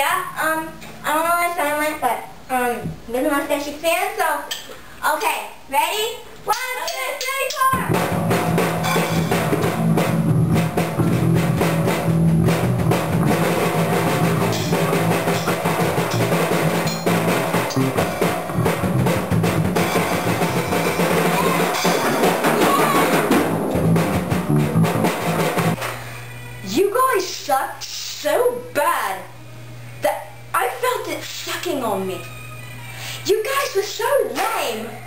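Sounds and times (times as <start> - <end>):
drum kit playing: 7.5 - 25.8
electric bass guitar: 7.8 - 25.8.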